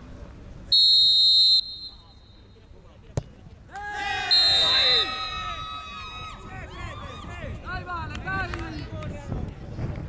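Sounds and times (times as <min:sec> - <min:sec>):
referee's whistle blast: 0:00.8 - 0:02.5, 0:04.3 - 0:05.8.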